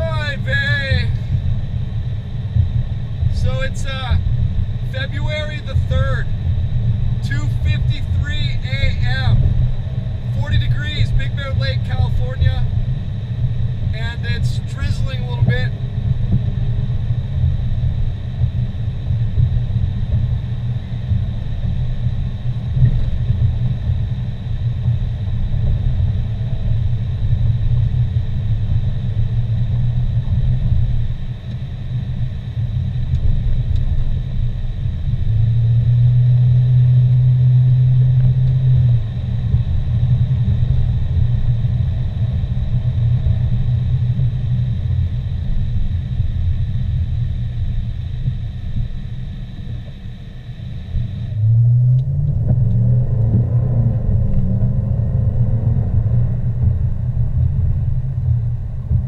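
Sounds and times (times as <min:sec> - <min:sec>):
car engine and road noise: 0:00.0 - 0:59.0.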